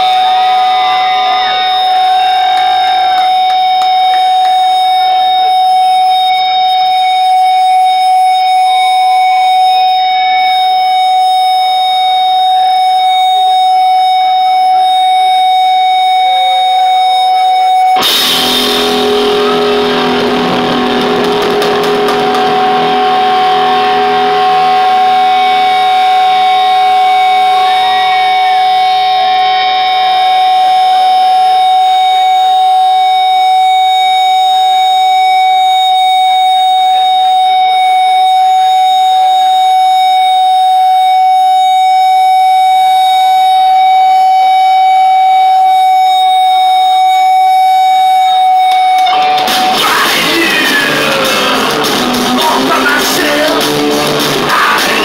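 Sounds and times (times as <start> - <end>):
electric guitar feedback whine: 0.0 - 55.0
lower feedback tone: 0.0 - 55.0.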